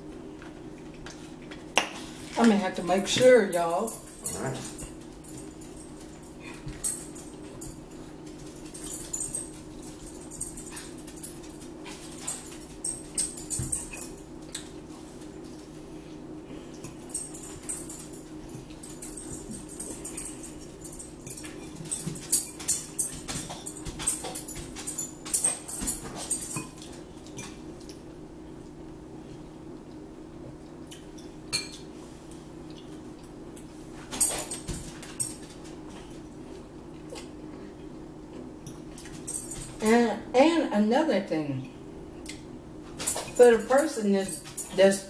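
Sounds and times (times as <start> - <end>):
steady low hum: 0.0 - 45.0
cutlery clinking on ceramic bowls: 31.5 - 31.9.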